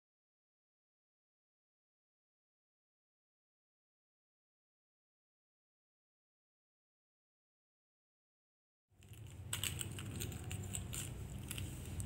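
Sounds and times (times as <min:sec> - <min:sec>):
plastic beads clicking: 0:09.0 - 0:12.0.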